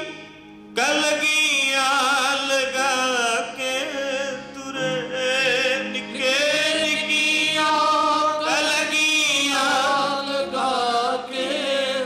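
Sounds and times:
men singing devotional song: 0.8s - 12.0s.

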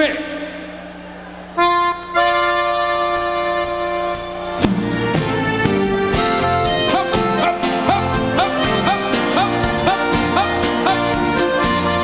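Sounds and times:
accordion held chord: 1.6s - 12.0s.

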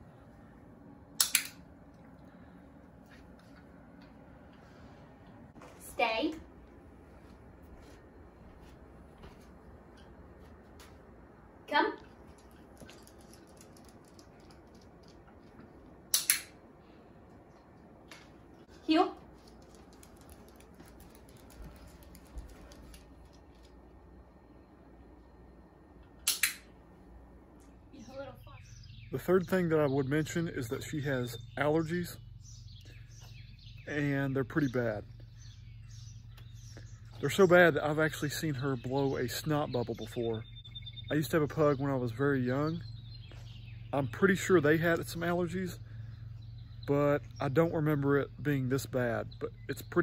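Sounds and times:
puppy claws ticking on wood floor: 19.2s - 23.8s
dog-training clicker clicks: 26.3s - 26.6s.

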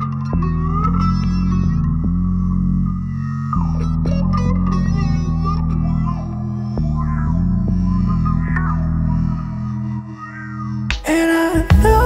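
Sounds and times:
held bass notes: 0.0s - 11.0s
plucked guitar notes: 0.0s - 11.1s.

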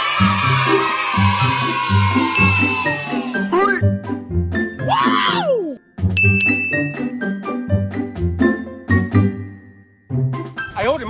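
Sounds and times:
upbeat background music: 0.0s - 11.0s
bright bell-like ding: 6.2s - 6.9s.

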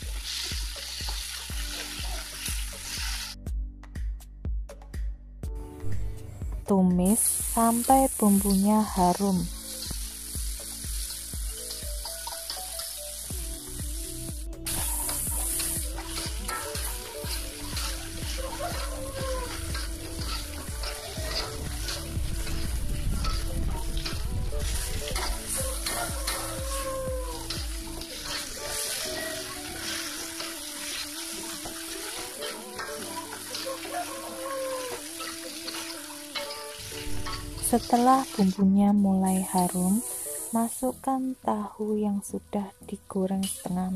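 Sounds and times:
food sizzling in hot oil: 0.0s - 3.4s, 7.0s - 41.1s
spatula scraping and knocking wok: 9.5s - 13.8s, 14.7s - 38.5s.

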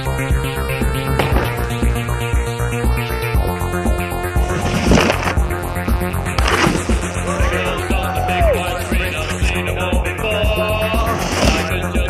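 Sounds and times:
music with a steady beat: 0.0s - 12.0s
snowboard scraping on concrete and snow: 0.2s - 2.1s, 3.8s - 12.0s.

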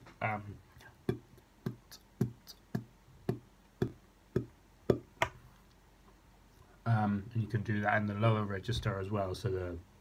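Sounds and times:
beatboxed kick drum: 1.0s - 5.3s.

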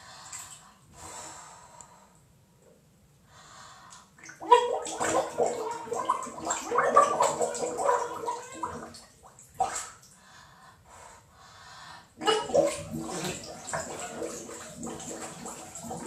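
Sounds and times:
person's voice under water: 4.3s - 9.0s, 12.2s - 16.0s.

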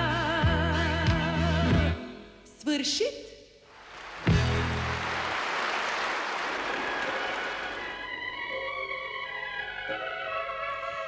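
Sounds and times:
studio audience applauding: 3.7s - 8.4s.

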